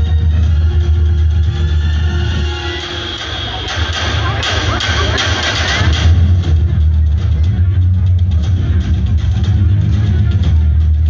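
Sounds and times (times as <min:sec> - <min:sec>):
heavy bass line: 0:00.0 - 0:11.0
loud band music: 0:00.0 - 0:11.0.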